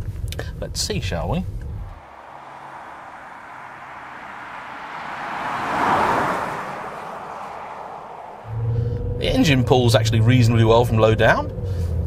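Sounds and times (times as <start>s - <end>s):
car driving past: 1.8s - 10.0s.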